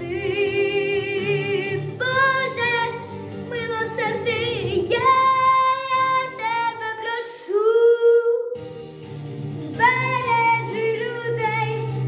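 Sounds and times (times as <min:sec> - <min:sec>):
girl singing: 0:01.6 - 0:08.6, 0:09.6 - 0:12.0
instrumental backing track: 0:08.6 - 0:12.0.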